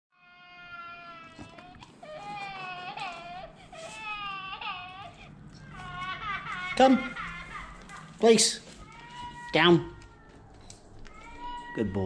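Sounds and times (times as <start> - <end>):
toy doll baby crying: 0.2 - 12.0.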